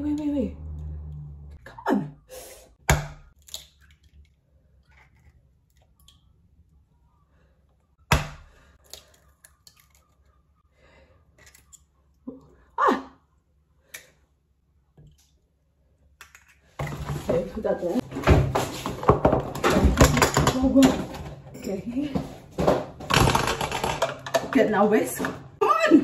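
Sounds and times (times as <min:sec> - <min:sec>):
eggshell cracking: 0:02.9 - 0:06.4.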